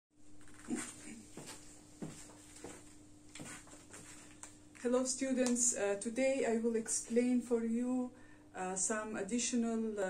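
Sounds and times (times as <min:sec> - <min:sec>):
faint steady hum: 0:00.2 - 0:10.0
footsteps: 0:00.6 - 0:04.6.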